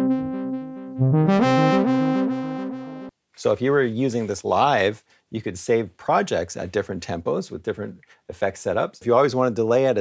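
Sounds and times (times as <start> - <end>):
stepping bass line: 0.0 - 3.1
synthesizer chords with reverb: 0.0 - 3.1.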